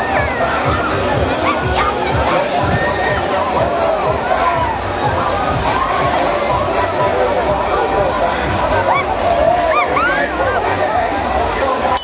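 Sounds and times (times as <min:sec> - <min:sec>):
fairground music with bass beat: 0:00.0 - 0:12.0
riders screaming and shouting: 0:08.7 - 0:10.8.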